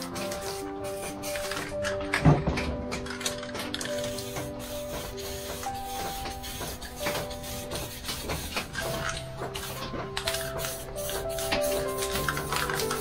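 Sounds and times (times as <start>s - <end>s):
spray paint can hissing: 0.0s - 2.2s, 3.1s - 13.0s
background music with held notes: 0.0s - 13.0s.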